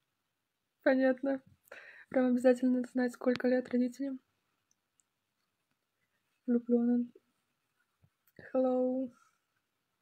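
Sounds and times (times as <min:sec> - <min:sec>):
woman speaking: 0:00.8 - 0:01.5, 0:02.1 - 0:04.3, 0:06.4 - 0:07.2, 0:08.4 - 0:09.2
faint clicks: 0:04.6 - 0:06.1.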